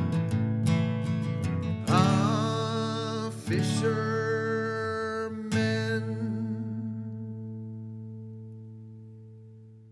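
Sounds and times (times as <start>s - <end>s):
acoustic guitar chord strum: 0.0s - 9.9s.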